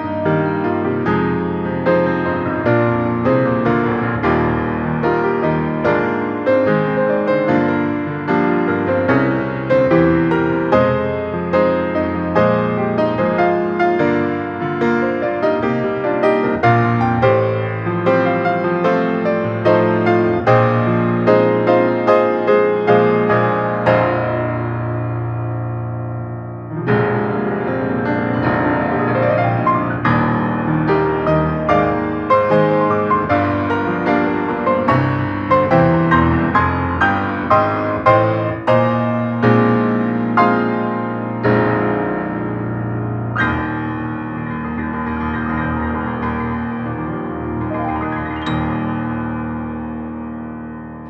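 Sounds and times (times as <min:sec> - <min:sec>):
solo piano ballad: 0:00.0 - 0:51.0.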